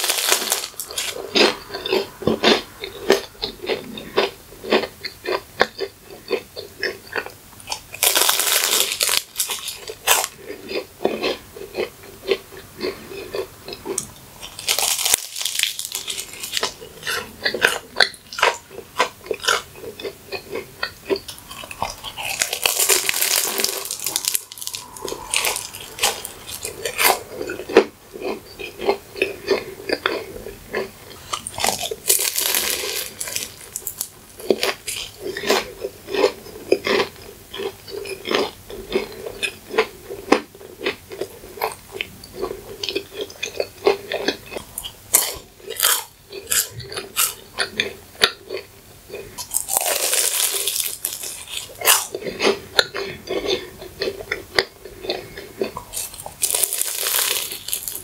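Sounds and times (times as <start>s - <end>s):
crisp pastry crunching: 0.0s - 58.0s.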